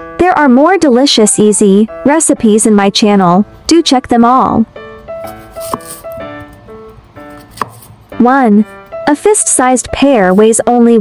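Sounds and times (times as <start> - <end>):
light background music: 0.0 - 11.0
knife cutting pear: 5.3 - 6.2, 7.3 - 7.9
knife knocking on cutting board: 5.7 - 5.9.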